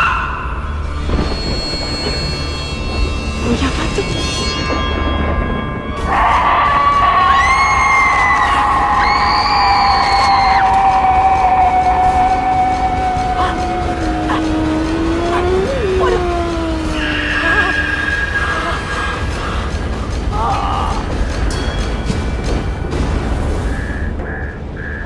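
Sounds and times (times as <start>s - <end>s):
eerie sustained high tone: 0.0s - 19.6s
low rising and falling tone: 10.5s - 18.8s.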